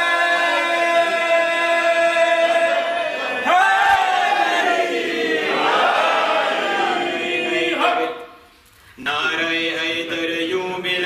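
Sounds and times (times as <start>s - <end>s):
group singing a devotional refrain: 0.0s - 8.4s.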